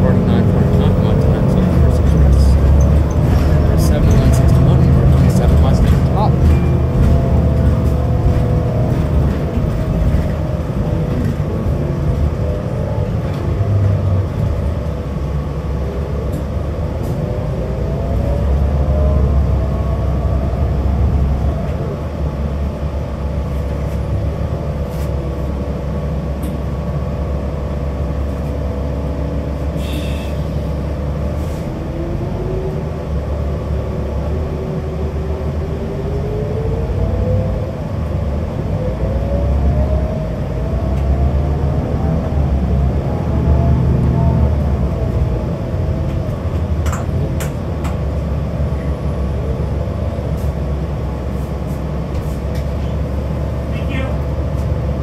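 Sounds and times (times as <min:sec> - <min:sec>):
bus engine and road rumble: 0:00.0 - 0:55.0
drivetrain whine: 0:00.0 - 0:55.0.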